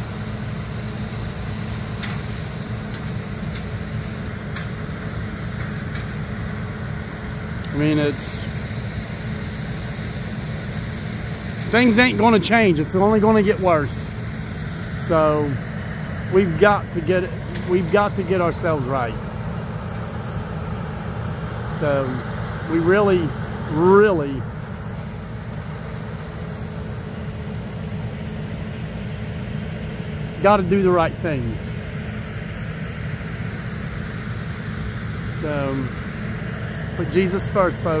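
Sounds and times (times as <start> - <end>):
low mechanical rumble: 0.0 - 38.0.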